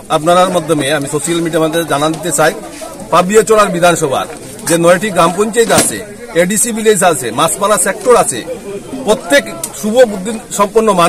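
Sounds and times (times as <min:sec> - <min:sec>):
man giving a speech: 0:00.0 - 0:11.0.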